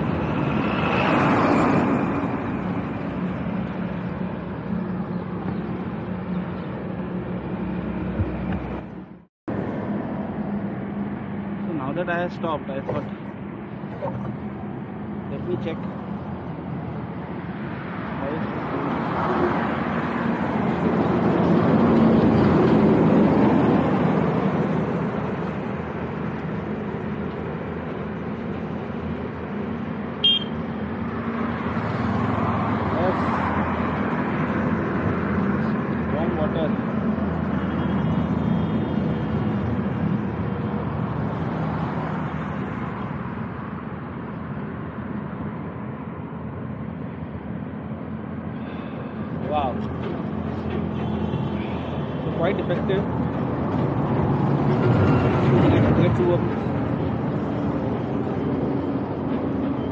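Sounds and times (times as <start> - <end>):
highway traffic rushing: 0.0 - 59.9.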